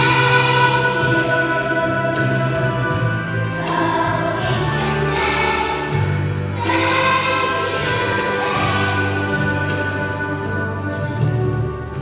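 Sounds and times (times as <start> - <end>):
children's choir singing: 0.0 - 11.7
instrumental accompaniment: 0.0 - 12.0.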